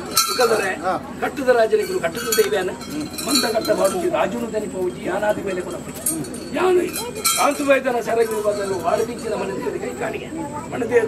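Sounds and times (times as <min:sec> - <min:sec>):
small bells clinking: 0:00.0 - 0:10.1.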